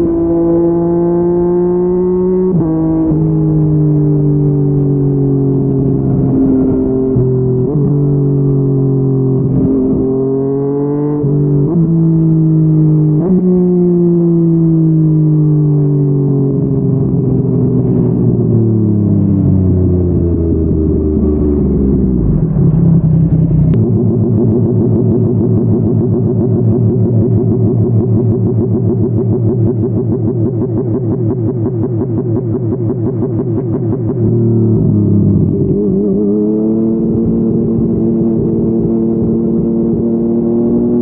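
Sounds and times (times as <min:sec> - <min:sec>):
motorcycle engine: 0:00.0 - 0:41.0.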